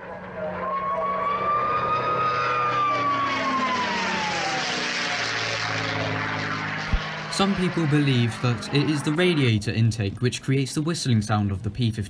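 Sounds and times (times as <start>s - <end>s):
aircraft whistle sliding down: 0.0s - 5.7s
propeller engine drone: 0.0s - 12.0s.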